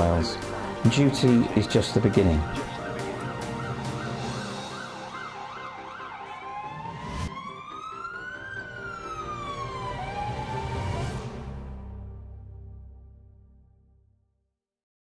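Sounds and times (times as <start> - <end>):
music bed: 0.0 - 5.1
emergency vehicle siren: 0.0 - 11.5.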